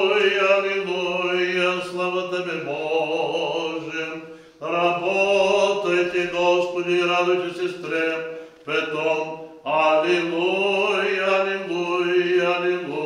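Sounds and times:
man chanting prayer: 0.0s - 13.0s.

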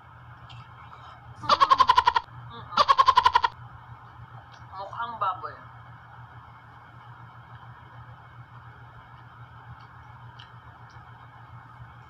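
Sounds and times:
high quavering voice-like call: 1.4s - 2.2s, 2.8s - 3.6s.

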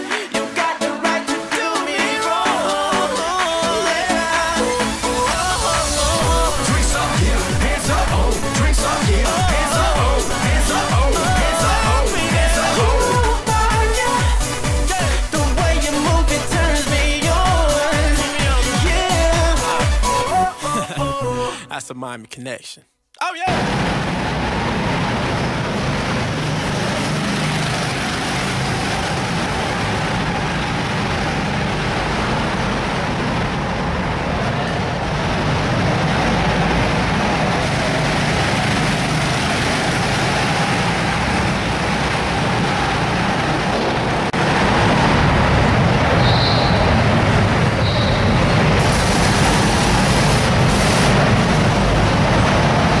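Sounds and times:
go-kart engines running: 4.0s - 15.9s, 23.5s - 53.0s.

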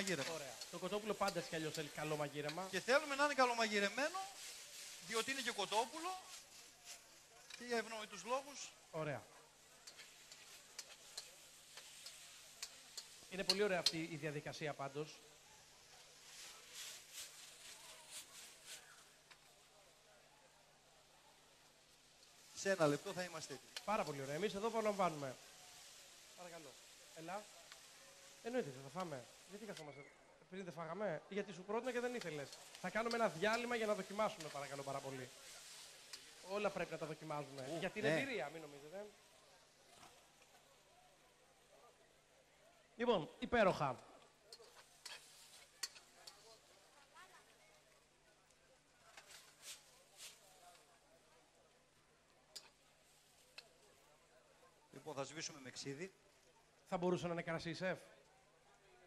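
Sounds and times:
chicken sizzling in a wok: 0.0s - 30.6s, 31.5s - 57.4s
metal ladle clicking against wok: 9.8s - 14.0s, 44.5s - 46.4s, 52.5s - 52.8s.

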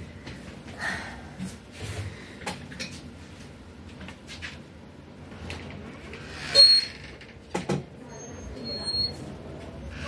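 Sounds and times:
high-pitched squeak: 6.3s - 7.1s, 8.1s - 10.0s.

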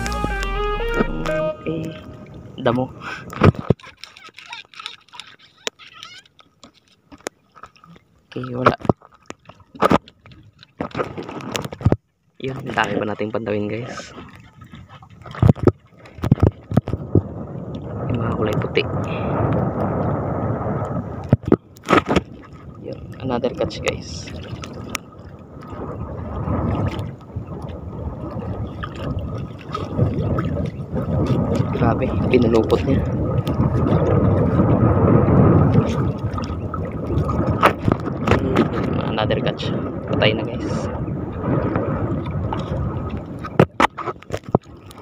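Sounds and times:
water sloshing against canoe hull: 0.4s - 45.0s.

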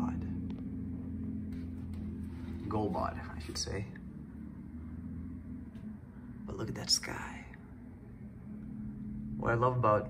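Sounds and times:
distant road traffic rumble: 0.0s - 10.0s
faint low hum: 0.0s - 10.0s.

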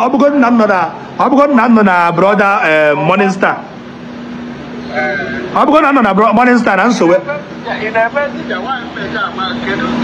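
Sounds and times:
steady humming tone: 0.0s - 10.0s.

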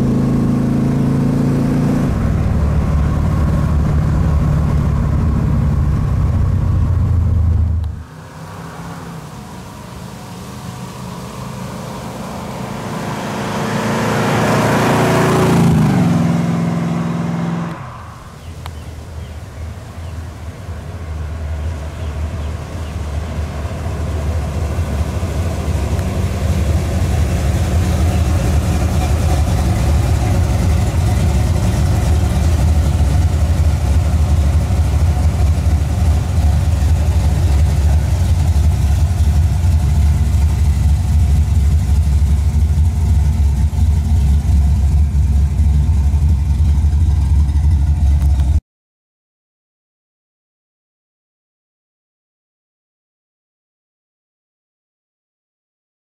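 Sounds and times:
car engine deep exhaust note: 0.0s - 48.6s.

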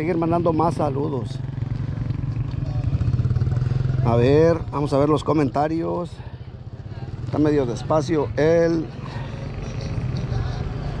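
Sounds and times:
small engine idling: 0.0s - 11.0s.

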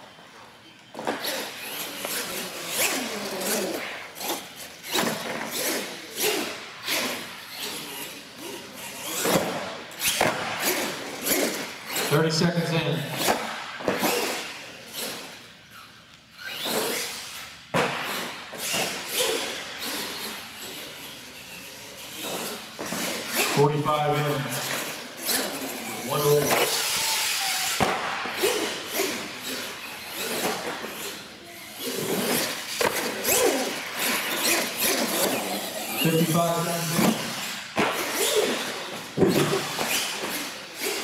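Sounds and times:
people's voices: 25.7s - 27.7s, 35.8s - 37.4s.

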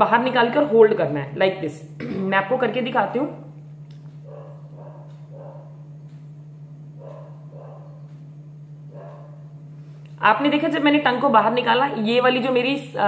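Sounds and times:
steady low hum: 0.0s - 13.0s
dog barking faintly: 4.2s - 5.8s, 7.0s - 8.1s.

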